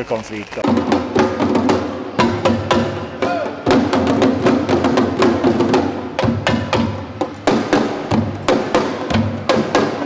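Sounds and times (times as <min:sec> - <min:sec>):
hand drums played fast: 0:00.6 - 0:10.0.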